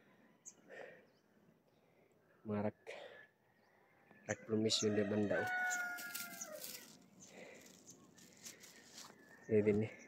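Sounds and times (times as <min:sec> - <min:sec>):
soft crackles: 0:06.0 - 0:09.4.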